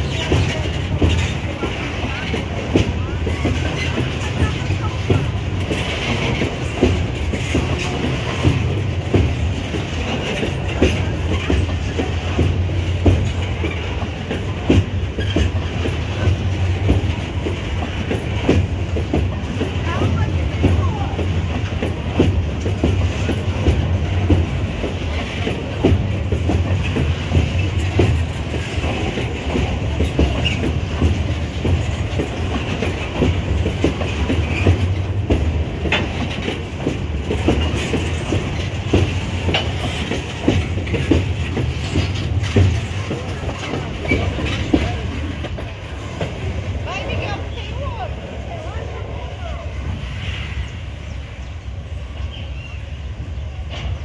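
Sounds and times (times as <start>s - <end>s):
wheels clicking and clanking: 0.0s - 49.4s
steel wheels rumbling on rail: 0.0s - 54.0s.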